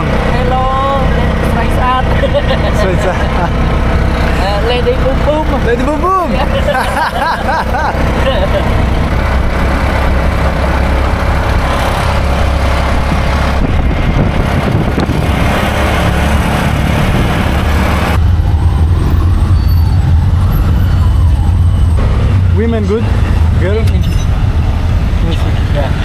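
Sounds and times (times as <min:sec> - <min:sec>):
auto-rickshaw engine drone: 0:00.0 - 0:26.0
rushing wind and road noise: 0:00.0 - 0:26.0.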